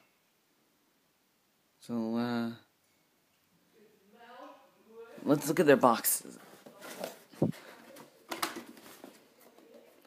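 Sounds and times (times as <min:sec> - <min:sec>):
cardboard rustling and scraping: 0:06.3 - 0:10.0.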